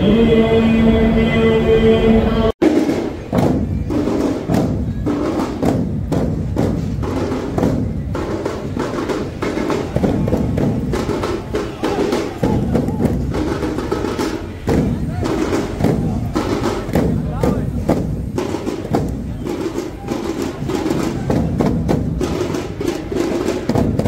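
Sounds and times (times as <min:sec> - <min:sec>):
large drums booming: 0:02.6 - 0:24.0
voices: 0:07.1 - 0:23.7.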